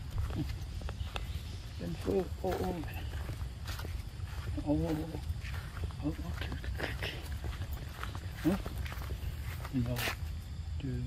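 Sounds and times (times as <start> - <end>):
footsteps on grass and leaves: 0.0 - 10.9.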